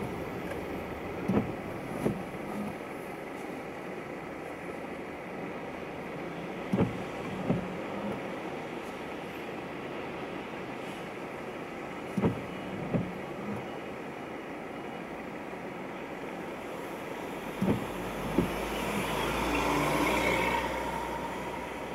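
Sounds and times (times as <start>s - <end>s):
traffic hum from inside a car: 0.0s - 21.9s
vehicles passing on wet road: 0.0s - 21.9s.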